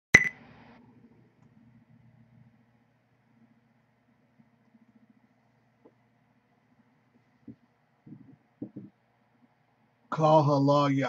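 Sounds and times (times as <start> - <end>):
faint low hum: 0.2 - 11.0.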